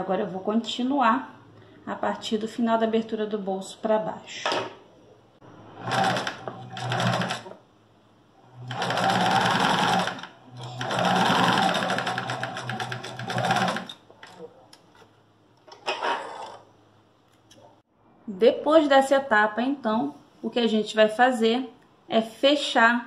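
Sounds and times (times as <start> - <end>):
sewing machine stitching: 5.6 - 7.6, 8.5 - 14.4.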